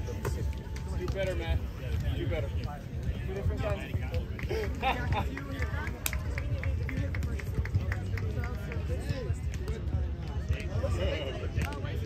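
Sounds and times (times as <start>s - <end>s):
distant voices chattering: 0.0s - 12.0s.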